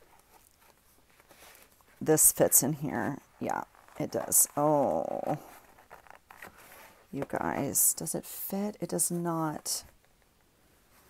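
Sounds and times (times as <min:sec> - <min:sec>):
notebook sliding into leather cover: 0:03.8 - 0:07.3.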